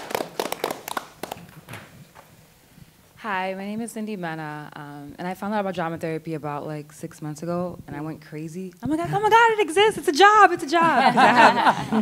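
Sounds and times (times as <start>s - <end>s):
people clapping: 0.0s - 1.9s.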